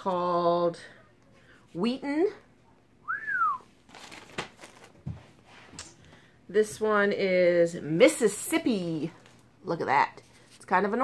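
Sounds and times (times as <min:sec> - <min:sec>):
person whistling: 0:03.0 - 0:03.7.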